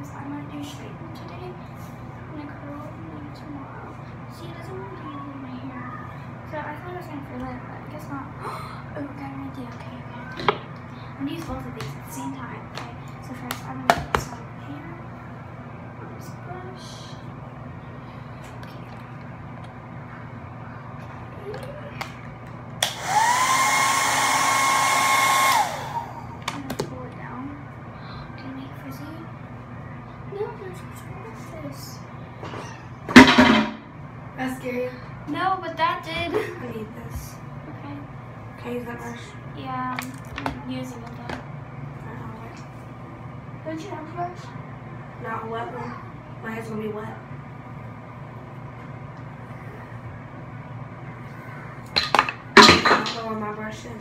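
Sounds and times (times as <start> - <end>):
hair dryer blowing: 22.8 - 26.5.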